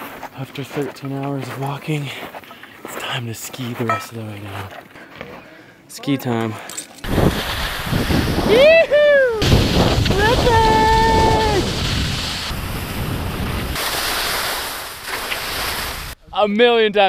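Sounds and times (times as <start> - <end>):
skis sliding on snow: 7.1 - 8.8, 9.4 - 16.2
wind rushing over microphone: 7.1 - 13.8
skier whooping: 8.2 - 11.9.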